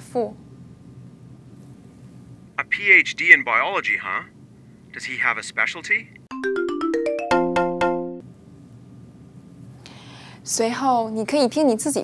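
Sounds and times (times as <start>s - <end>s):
electronic reward jingle: 6.3s - 8.2s.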